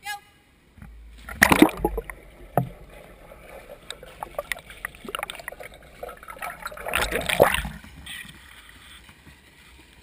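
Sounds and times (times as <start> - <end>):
muffled underwater pool noise: 0.8 - 8.4.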